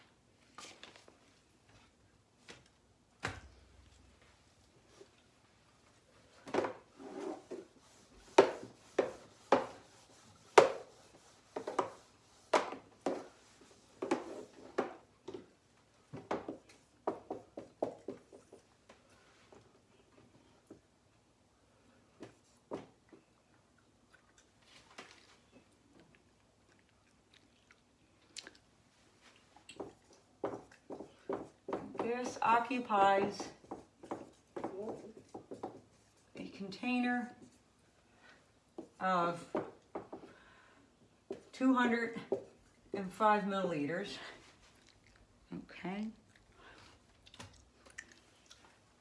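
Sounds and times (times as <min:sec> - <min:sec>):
eraser wiping whiteboard: 0:06.9 - 0:14.8, 0:30.5 - 0:37.7
marker squeaking on whiteboard: 0:33.6 - 0:36.2.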